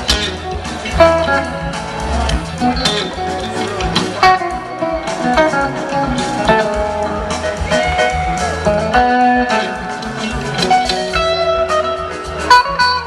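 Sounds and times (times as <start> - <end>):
electric guitar lead lines: 0.0 - 13.0
live rock band playing: 0.0 - 13.0.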